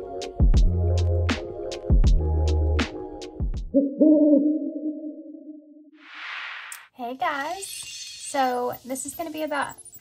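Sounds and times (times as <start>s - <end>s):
intro music with a beat: 0.0s - 3.8s
owl hooting: 3.7s - 5.6s.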